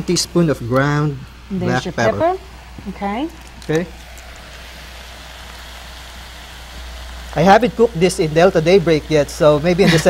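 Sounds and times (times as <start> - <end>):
vegetables sizzling in a wok: 0.0 - 10.0.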